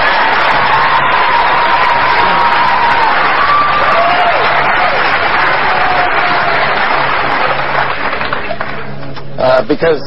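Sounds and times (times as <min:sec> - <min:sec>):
audience applauding and cheering: 0:00.0 - 0:09.0.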